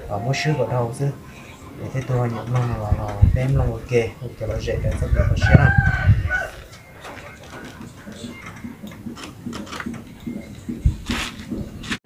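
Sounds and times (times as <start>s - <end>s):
rooster crowing: 5.1s - 6.7s.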